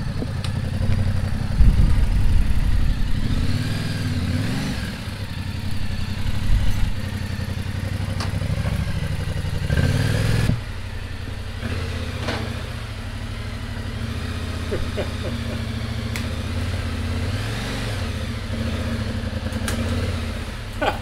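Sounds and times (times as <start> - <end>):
motorcycle engine running at low revs: 0.0 - 21.0.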